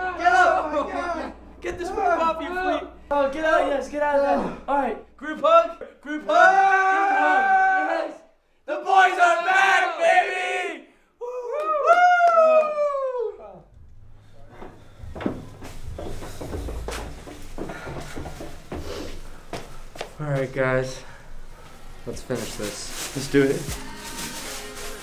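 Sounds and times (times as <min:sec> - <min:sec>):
men whooping and cheering: 0:00.0 - 0:02.6, 0:06.2 - 0:13.7
low rumble: 0:13.6 - 0:19.9.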